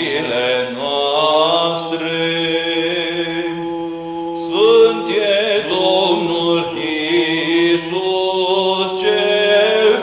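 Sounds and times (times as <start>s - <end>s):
chanted melismatic singing: 0.0s - 10.0s
steady low vocal drone: 0.0s - 10.0s.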